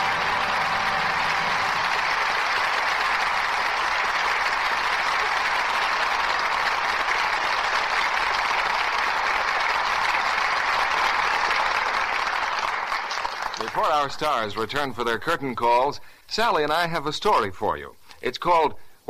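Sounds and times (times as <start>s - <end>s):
closing music: 0.0s - 3.9s
audience applauding: 0.0s - 14.6s.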